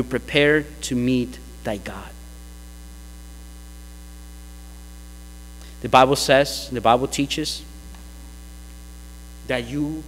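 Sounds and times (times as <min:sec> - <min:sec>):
man's voice: 0:00.0 - 0:02.2, 0:05.8 - 0:07.7, 0:09.4 - 0:10.0
low electrical hum: 0:00.0 - 0:10.0.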